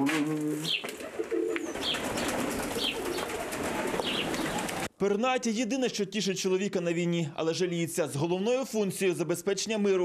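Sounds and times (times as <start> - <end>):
pigeons cooing: 0.0 - 4.9.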